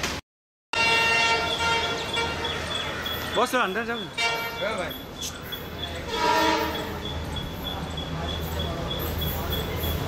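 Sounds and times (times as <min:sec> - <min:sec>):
locomotive horn honk: 0:00.7 - 0:03.3, 0:04.1 - 0:04.8, 0:06.0 - 0:07.0.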